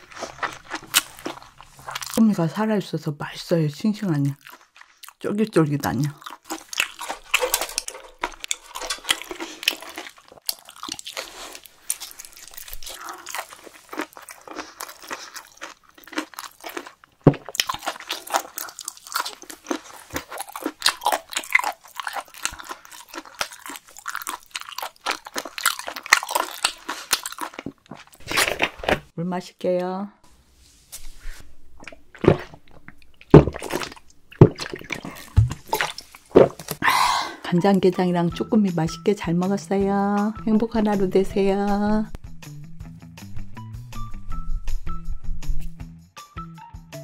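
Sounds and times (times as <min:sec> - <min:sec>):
person chewing: 0:00.0 - 0:02.2, 0:04.3 - 0:29.1, 0:31.7 - 0:36.8.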